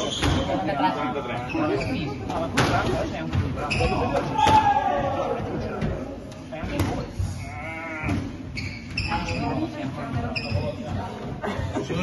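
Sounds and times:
shoes squeaking on wooden floor: 3.5s - 4.5s, 8.3s - 11.2s.

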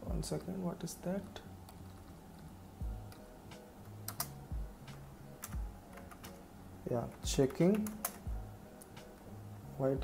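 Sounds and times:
keyboard keystrokes: 4.1s - 4.4s, 7.1s - 8.3s.

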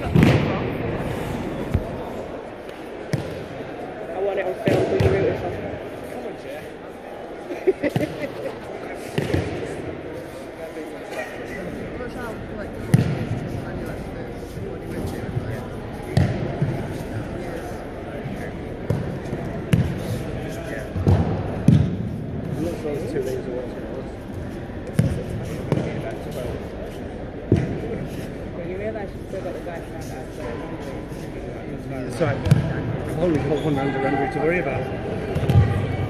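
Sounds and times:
murmur of voices: 0.0s - 36.0s.

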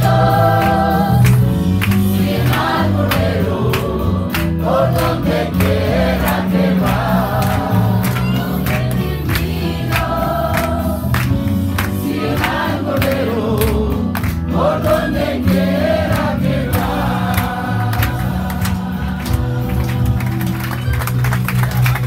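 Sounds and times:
crowd singing a hymn: 0.0s - 20.4s.

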